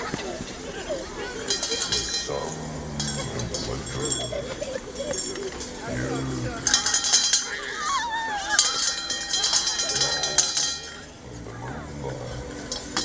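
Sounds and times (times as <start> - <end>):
metal hand bells jangling: 1.4 - 11.4, 12.2 - 13.0.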